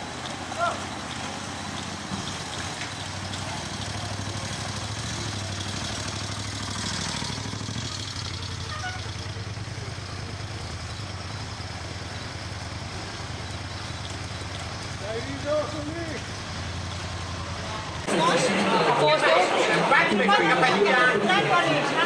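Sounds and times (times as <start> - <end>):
engines running in low gear: 0.0 - 20.1.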